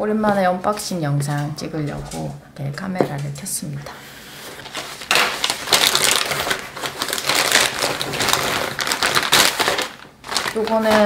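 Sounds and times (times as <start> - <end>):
plastic bag crinkling: 4.5 - 11.0.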